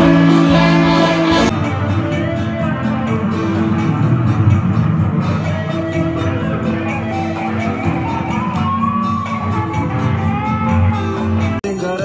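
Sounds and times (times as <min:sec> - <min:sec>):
electric guitar quick picked run: 0:00.0 - 0:01.6.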